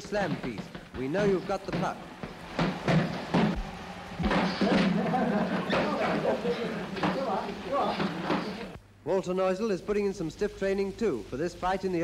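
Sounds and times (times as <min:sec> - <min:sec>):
footwork in boxing ring: 0:00.0 - 0:08.7.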